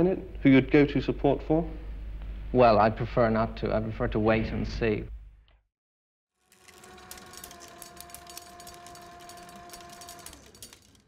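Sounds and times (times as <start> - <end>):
reel machine whirring hum: 6.4 - 11.0
rapid clicking: 6.5 - 11.0.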